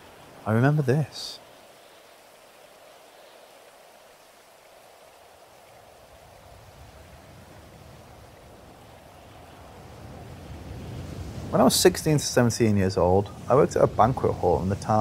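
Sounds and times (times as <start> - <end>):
rain-like ambient noise: 0.0 - 15.0.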